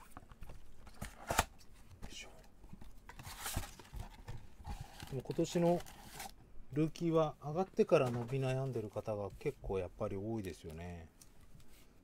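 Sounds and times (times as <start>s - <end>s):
cardboard rustling: 0.0s - 6.4s, 7.8s - 9.8s.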